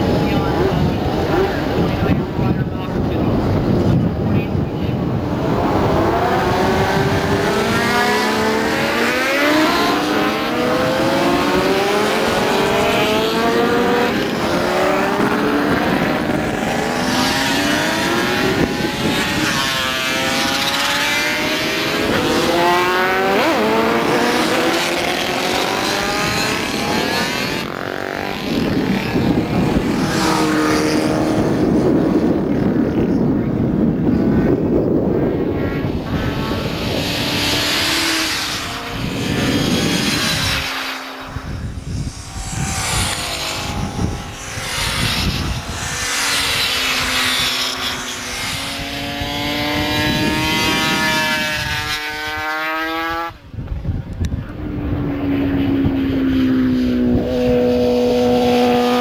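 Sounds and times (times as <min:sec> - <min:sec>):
racing motorcycles revving: 0:00.0 - 0:59.0.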